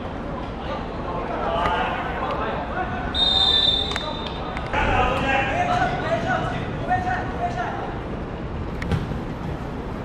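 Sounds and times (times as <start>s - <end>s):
whistle blast: 3.1s - 4.4s.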